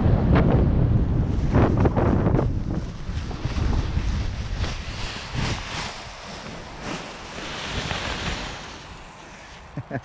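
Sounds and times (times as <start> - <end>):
wind rushing over microphone: 0.0 - 9.8.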